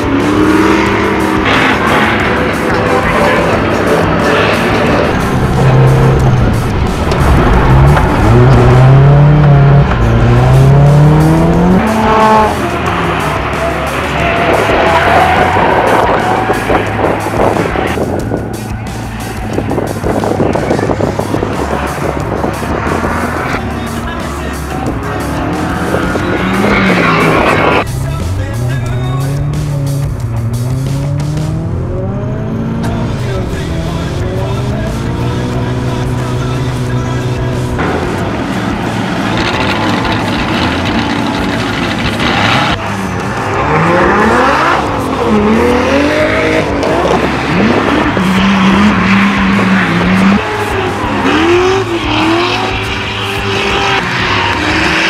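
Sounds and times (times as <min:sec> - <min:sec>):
car engine accelerating: 0:00.0 - 0:55.0.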